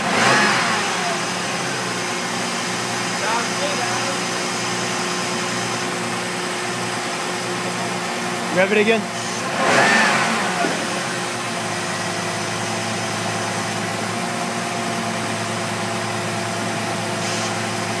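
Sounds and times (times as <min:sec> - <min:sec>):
car engine revving and idling: 0:00.0 - 0:18.0.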